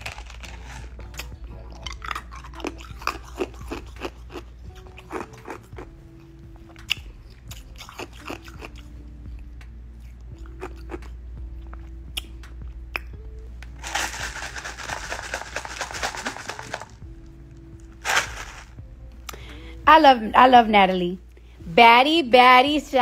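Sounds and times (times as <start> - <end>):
person chewing and crunching food: 0.0 - 17.3, 17.9 - 18.8.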